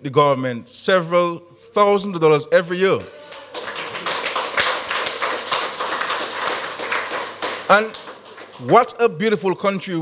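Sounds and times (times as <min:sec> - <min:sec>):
audience clapping: 0:03.2 - 0:09.0.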